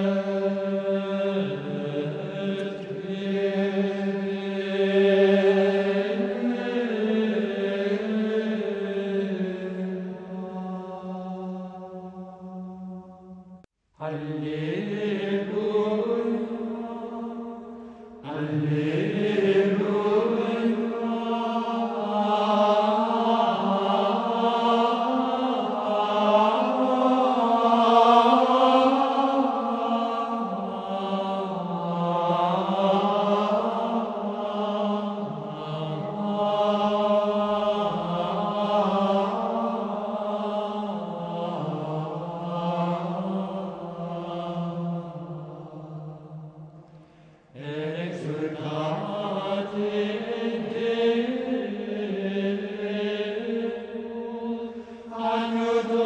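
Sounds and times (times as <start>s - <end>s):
low voices chanting: 0.0s - 56.0s.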